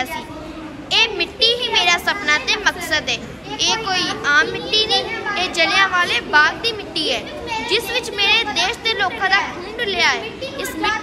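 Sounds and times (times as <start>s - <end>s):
child speaking: 0.0s - 11.0s.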